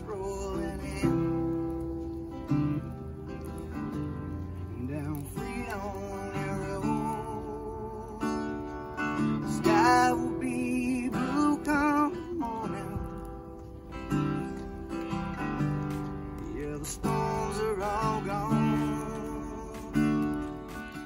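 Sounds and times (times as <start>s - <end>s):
person singing: 0.0s - 2.4s, 4.6s - 13.3s, 16.4s - 21.0s
acoustic guitar strummed and picked: 0.0s - 21.0s.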